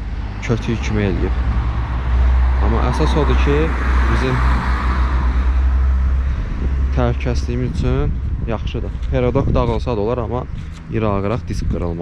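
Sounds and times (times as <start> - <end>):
car driving past: 0.0 - 7.3
steady low rumble: 0.0 - 12.0.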